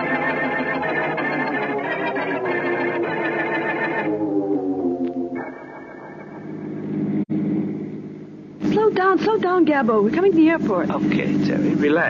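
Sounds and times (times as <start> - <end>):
car engine hum: 6.3 - 12.0.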